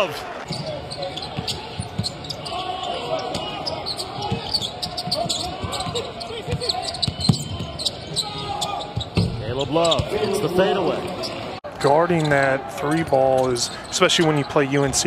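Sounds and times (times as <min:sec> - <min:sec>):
sneakers squeaking: 0:00.4 - 0:14.7.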